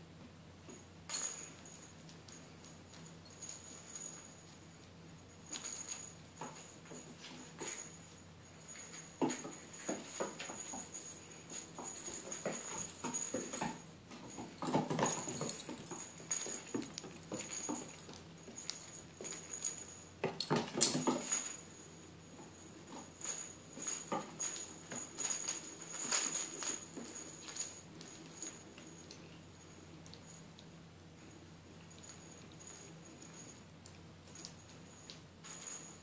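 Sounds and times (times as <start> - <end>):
small bell jingling: 1.1 - 36.0
paws pattering on wooden floor: 8.8 - 21.5.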